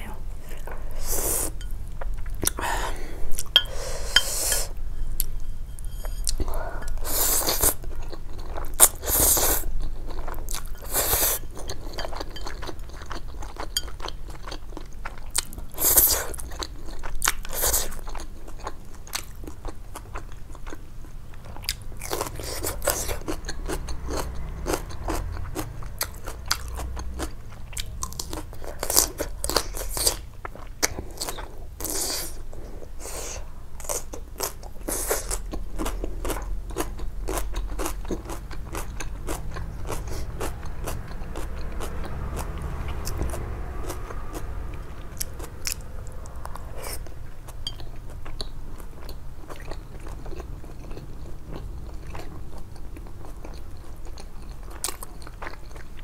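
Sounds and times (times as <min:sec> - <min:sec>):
cucumber crunching while chewed: 0:33.8 - 0:44.0.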